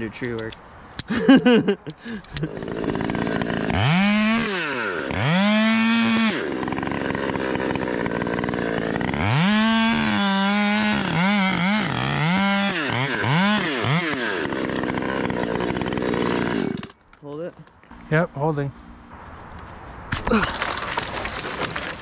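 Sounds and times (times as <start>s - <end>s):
chainsaw cutting wood: 2.0s - 17.0s, 20.5s - 22.0s.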